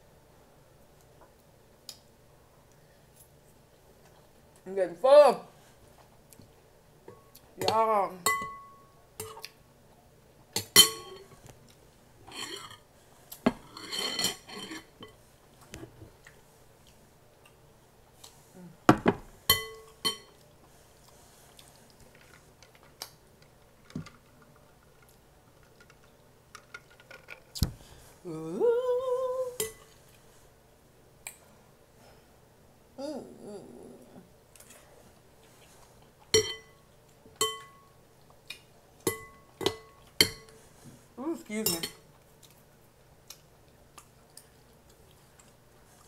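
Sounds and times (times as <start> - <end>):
spoon scraping glass bowl: 12.3 - 12.8, 13.7 - 15.2
metal spoon clinking on glass bowl: 19.5 - 20.3, 36.4 - 36.8, 37.4 - 37.9
person humming: 28.2 - 29.6, 33.0 - 34.3.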